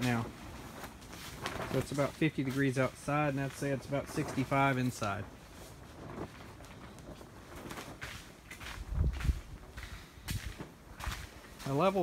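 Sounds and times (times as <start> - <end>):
plastic sheeting rustling in wind: 0.0 - 12.0
wind buffeting microphone: 5.3 - 11.4.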